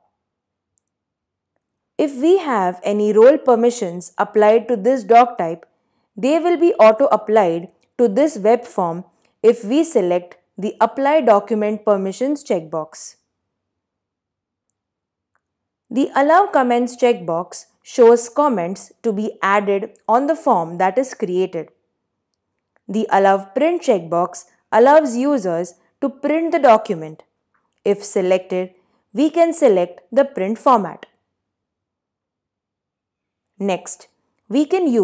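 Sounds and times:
woman's voice: 2.0s - 5.6s, 6.2s - 13.2s, 15.9s - 21.7s, 22.9s - 27.2s, 27.9s - 31.1s, 33.6s - 35.0s.

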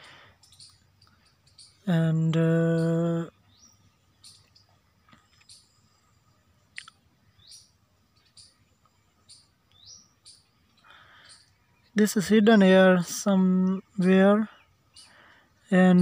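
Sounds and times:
bird chirping: 0.0s - 16.0s.

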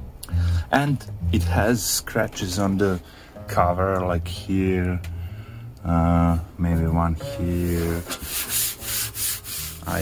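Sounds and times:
person speaking: 0.2s - 8.2s.

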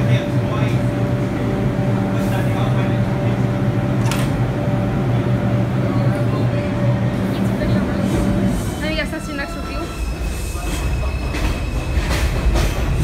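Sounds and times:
subway train electrical hum: 0.0s - 13.0s.

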